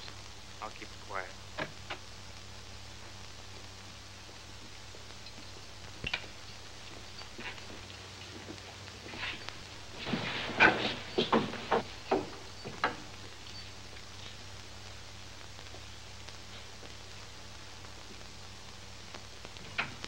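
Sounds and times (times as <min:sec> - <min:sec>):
steady hiss: 0:00.0 - 0:20.0.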